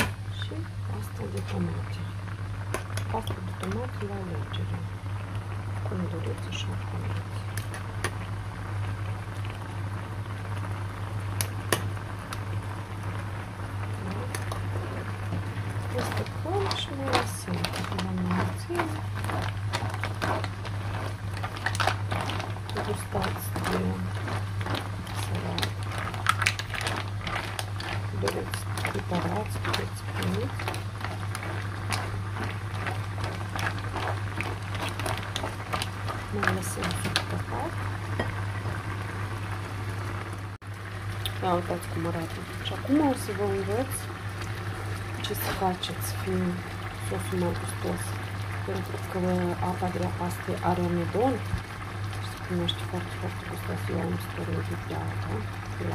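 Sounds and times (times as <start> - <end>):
mussels bubbling in sauce: 0.0 - 55.9
steady low hum: 0.0 - 55.9.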